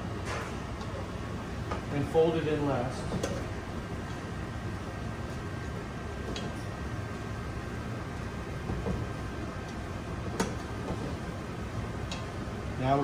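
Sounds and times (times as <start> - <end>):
steady kitchen hum: 0.0 - 13.0.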